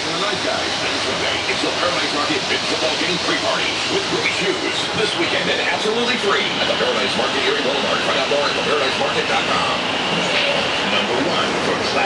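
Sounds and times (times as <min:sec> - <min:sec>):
wash machinery running: 0:00.0 - 0:12.0.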